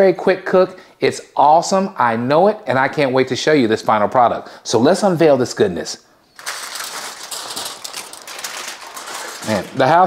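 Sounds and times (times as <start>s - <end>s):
crinkly wrapping crackling: 6.4s - 10.0s.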